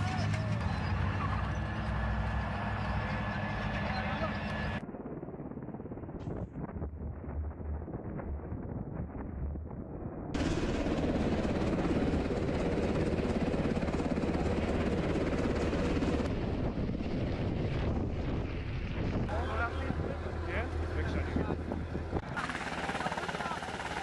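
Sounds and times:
voices: 0.0s - 2.1s, 2.9s - 4.8s, 19.3s - 24.0s
helicopter rotor beating: 0.0s - 24.0s.

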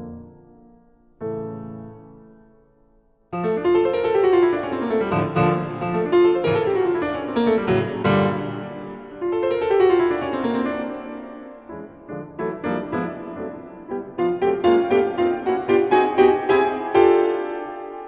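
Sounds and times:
grand piano solo: 0.0s - 2.7s, 3.3s - 18.0s.

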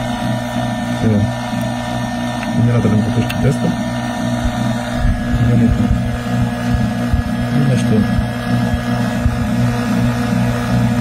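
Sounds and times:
electric motor humming: 0.0s - 11.0s.

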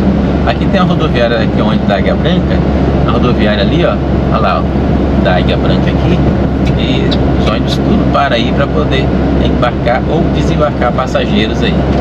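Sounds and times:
road noise: 0.0s - 12.0s
truck diesel engine droning: 0.0s - 12.0s.

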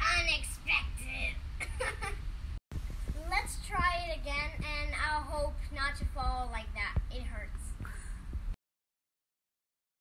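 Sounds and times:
girl singing: 0.0s - 1.2s, 3.1s - 7.8s.

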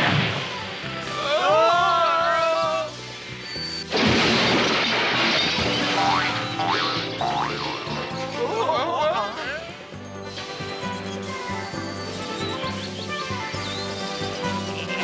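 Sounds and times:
loud smash: 0.0s - 0.7s, 3.9s - 6.0s
background music: 0.0s - 15.0s
tree crashing down: 3.9s - 6.2s.

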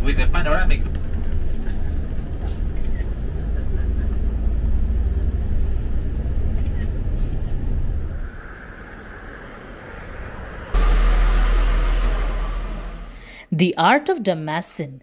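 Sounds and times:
bus rumbling: 0.0s - 13.6s
loud rushing noise: 8.0s - 13.4s.

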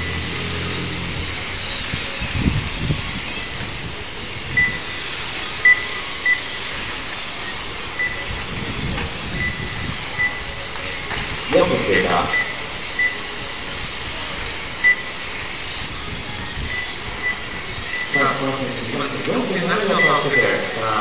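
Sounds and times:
rc car motors whining: 0.0s - 21.0s
short high beeps: 19.8s - 21.0s.

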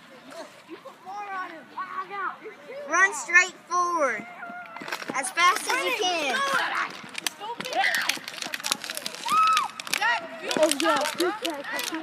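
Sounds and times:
child's running footsteps: 4.4s - 12.0s.

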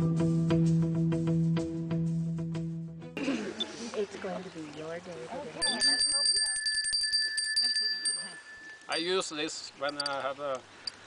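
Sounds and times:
small hand bell shaken rapidly: 5.6s - 9.2s.

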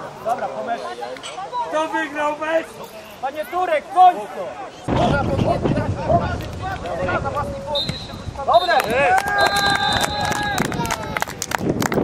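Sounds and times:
wind rumbling on microphone: 4.9s - 12.0s
high whistle-like tone: 7.7s - 10.4s.

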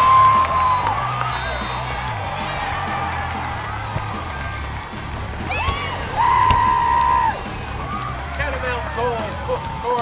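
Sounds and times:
background music: 0.0s - 10.0s
crowd cheering and whooping: 0.0s - 10.0s
high-pitched held whoop: 5.5s - 8.0s.

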